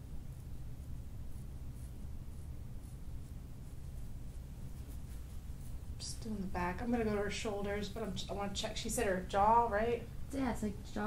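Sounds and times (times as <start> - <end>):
low room hum: 0.0 - 11.0
hands rustling over hair: 1.6 - 7.2.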